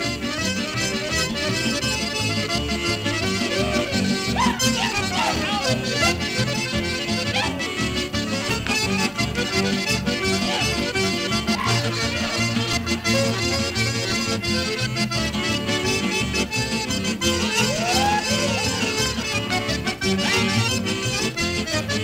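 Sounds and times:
string-band music: 0.0s - 22.0s.

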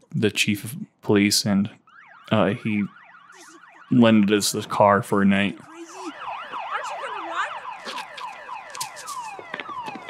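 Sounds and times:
police car siren: 1.4s - 10.0s.

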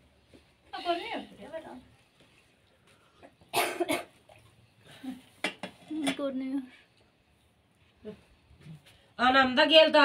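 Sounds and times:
person coughing: 3.5s - 4.1s.

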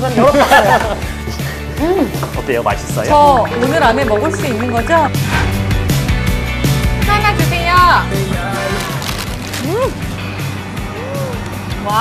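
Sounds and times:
background music with beat: 0.8s - 8.6s.

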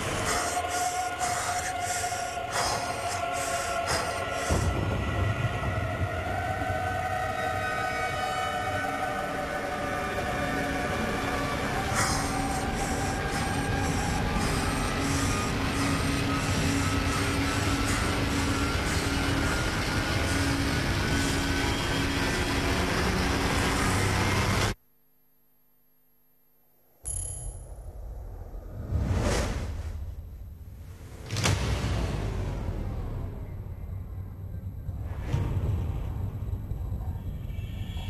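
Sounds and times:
repeating low pulse: 27.1s - 29.1s.

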